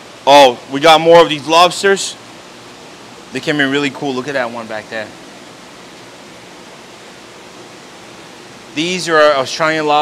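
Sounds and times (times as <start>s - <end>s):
aquarium water rushing: 0.0s - 10.0s.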